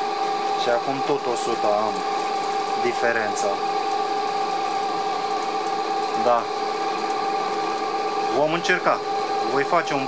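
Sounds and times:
electric motor hum and whine: 0.0s - 10.0s.

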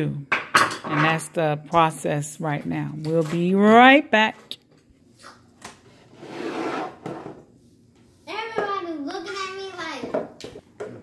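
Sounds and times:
board sliding against board: 5.9s - 7.4s.

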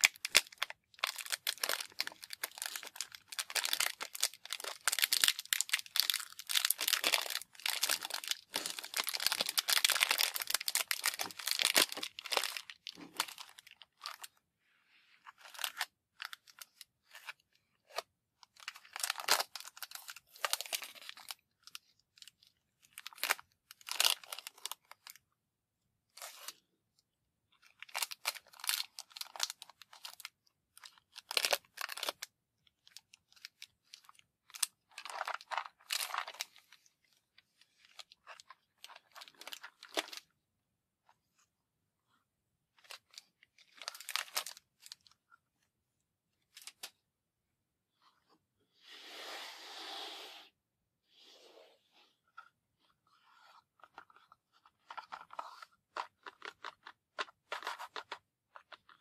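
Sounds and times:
plastic wrapper crinkling and tearing: 0.0s - 14.4s, 15.3s - 25.2s, 27.6s - 40.3s, 42.7s - 45.2s, 53.3s - 59.0s.

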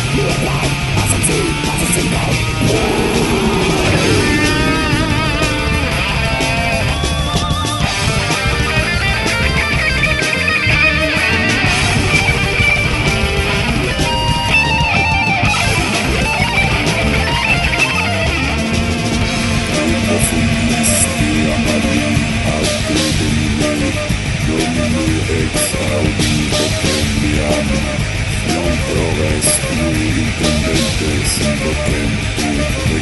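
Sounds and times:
heavy metal band playing: 0.0s - 33.0s.

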